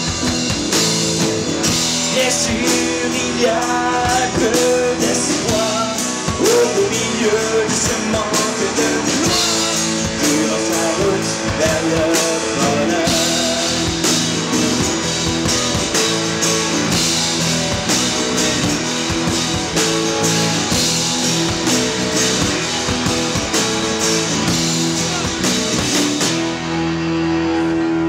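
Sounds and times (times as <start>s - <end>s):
drum kit and cymbals: 0.0s - 27.0s
electric bass: 0.0s - 28.0s
electric guitar: 0.0s - 28.0s
strummed acoustic guitars: 0.0s - 28.0s.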